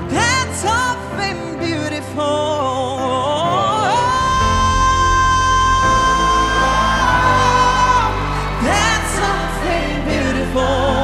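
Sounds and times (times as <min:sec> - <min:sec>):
backing music: 0:00.0 - 0:11.0
man singing: 0:00.0 - 0:11.0.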